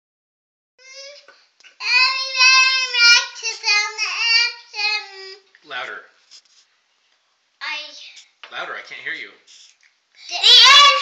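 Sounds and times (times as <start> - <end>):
girl singing: 0.8 - 5.5, 10.2 - 11.0
adult speaking: 5.6 - 6.2, 8.4 - 9.5.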